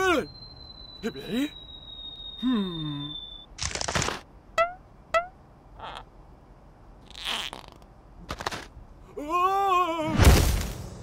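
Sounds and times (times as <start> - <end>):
high whistle-like tone: 0.0 - 3.5
squeaky blips: 0.0 - 3.6, 4.6 - 6.1.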